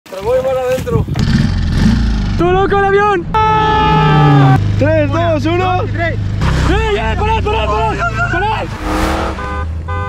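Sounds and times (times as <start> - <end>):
person shouting: 3.3 - 4.6.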